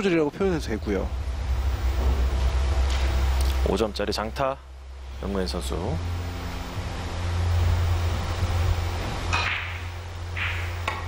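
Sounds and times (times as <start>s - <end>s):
low hum of hall: 0.0s - 11.0s
cue striking ball click: 9.3s - 11.0s.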